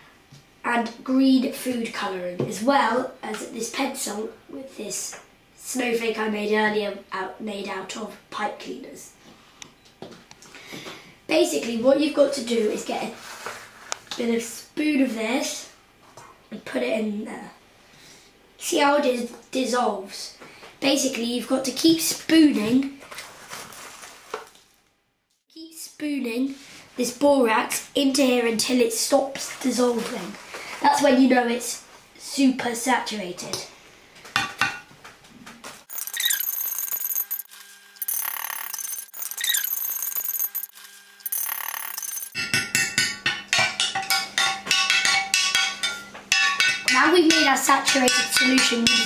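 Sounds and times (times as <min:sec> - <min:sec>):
spoon handling noise in glass: 0:35.9 - 0:40.7.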